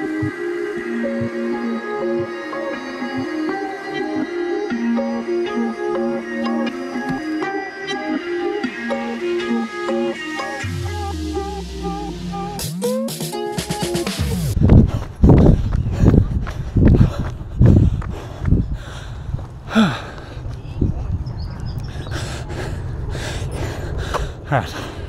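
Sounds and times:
background music: 0:00.0 - 0:14.6
pitch sweep: 0:00.0 - 0:14.6
person panting heavily: 0:14.6 - 0:20.9, 0:21.9 - 0:25.0.

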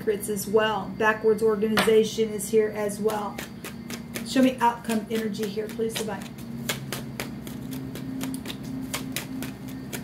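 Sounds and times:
cards being shuffled: 0:04.9 - 0:10.0.

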